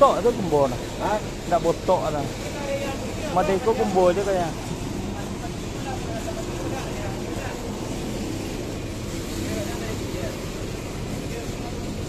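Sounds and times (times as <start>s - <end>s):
distant voices talking: 0.0s - 12.0s
steady low rumble: 0.0s - 12.0s.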